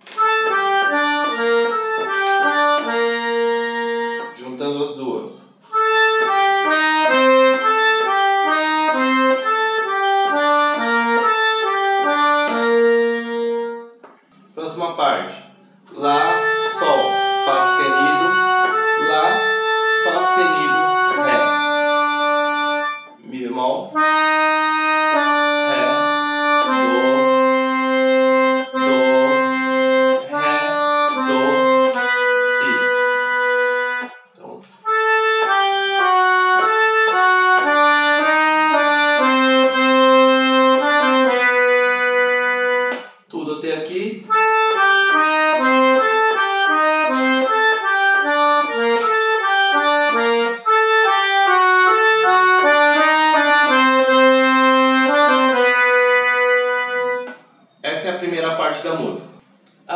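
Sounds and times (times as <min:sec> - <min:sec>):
accordion melody: 0:00.0 - 0:59.9.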